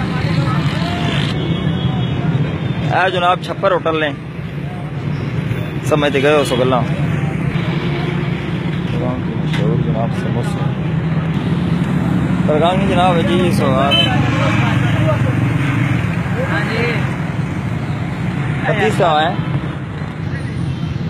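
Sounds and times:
traffic engine hum: 0:00.0 - 0:21.0.

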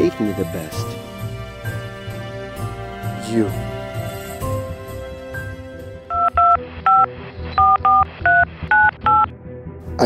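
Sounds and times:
soft background music: 0:00.0 - 0:10.0
phone keypad touch tones: 0:06.1 - 0:09.3.

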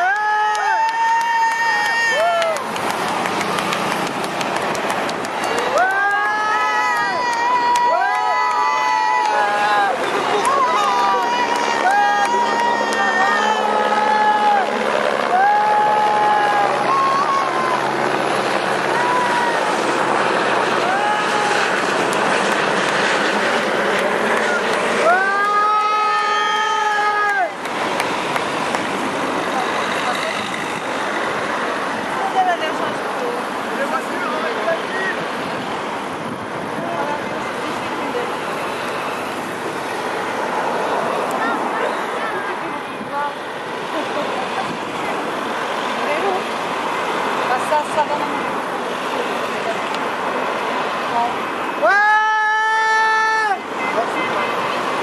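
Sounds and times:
cars passing by: 0:00.0 - 0:55.0
car horns tooting: 0:53.6 - 0:55.0.

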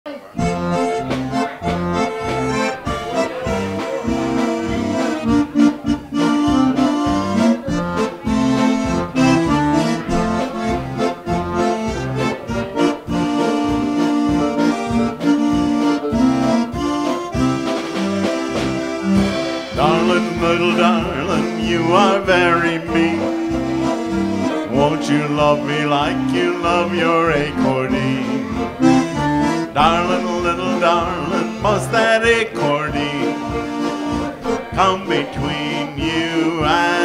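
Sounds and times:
concertina playing lively tune: 0:00.1 - 0:37.0.

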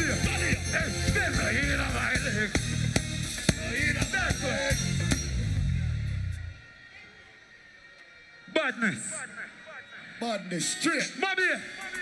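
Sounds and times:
live band with heavy bass: 0:00.0 - 0:06.4.

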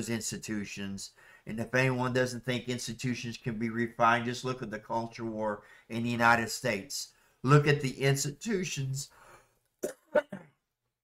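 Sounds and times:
man coughing: 0:09.8 - 0:10.6.

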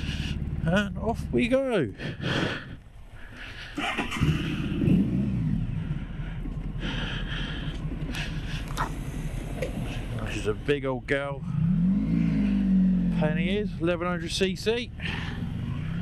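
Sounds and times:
motorcycle engine pulling away: 0:03.0 - 0:10.6, 0:11.2 - 0:16.0.

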